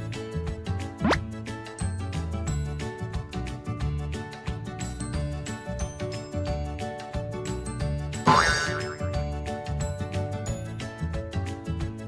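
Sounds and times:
background music with steady beat: 0:00.0 - 0:12.0
cartoon boing sound effect: 0:08.3 - 0:09.0.

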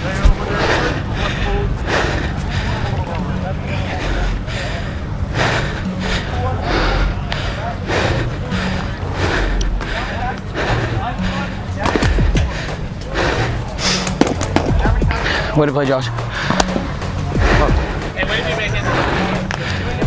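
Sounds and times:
indistinct voices: 0:00.0 - 0:20.0
music with steady beat and bass: 0:08.1 - 0:20.0.

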